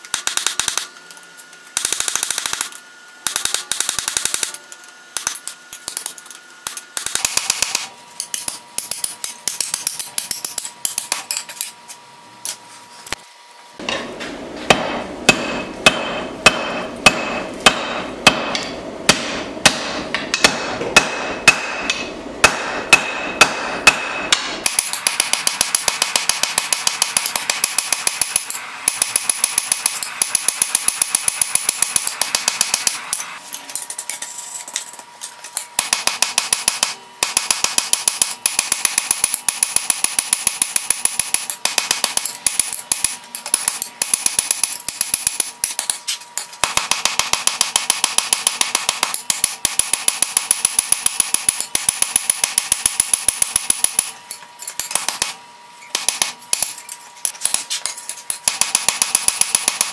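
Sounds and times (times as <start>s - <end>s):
hammer striking steel on anvil: 13.8s - 33.4s, 35.8s - 46.0s, 46.6s - 56.8s, 58.4s - 59.9s.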